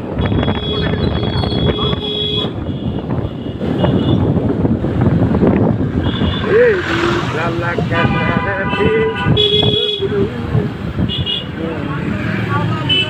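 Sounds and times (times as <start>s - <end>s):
wind buffeting microphone: 0.0s - 12.9s
road noise: 0.0s - 13.0s
high steady horn: 6.0s - 10.1s.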